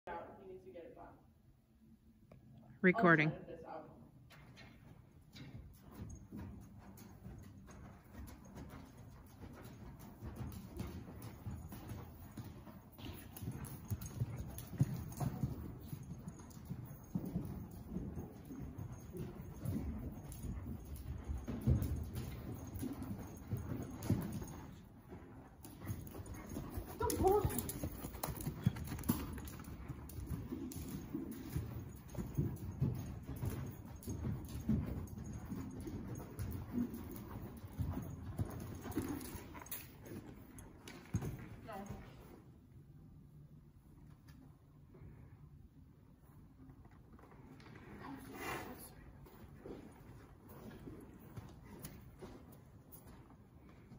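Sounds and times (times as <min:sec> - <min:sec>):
horse hoofbeats on soft dirt: 0:04.2 - 0:42.7, 0:46.0 - 0:53.9.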